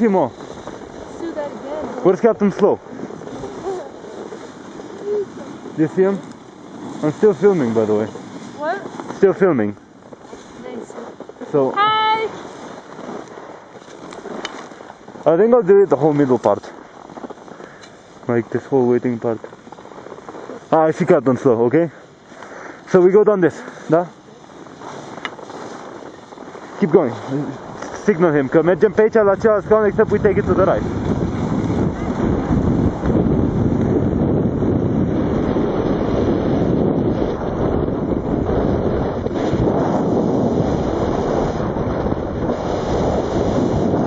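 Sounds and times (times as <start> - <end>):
rushing outdoor background noise: 0.0 - 44.0
skis sliding on snow: 0.0 - 44.0
wind over microphone: 0.0 - 44.0.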